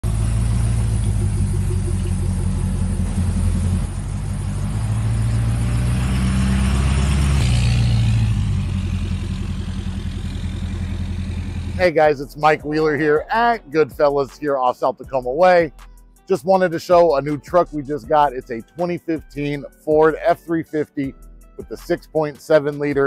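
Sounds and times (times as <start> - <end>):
diesel engine idling: 0.0 - 13.6.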